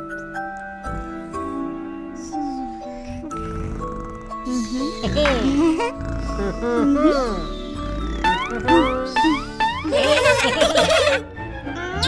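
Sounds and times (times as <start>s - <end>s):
light background music: 0.0s - 12.0s
warbling cartoon sound: 7.1s - 11.2s.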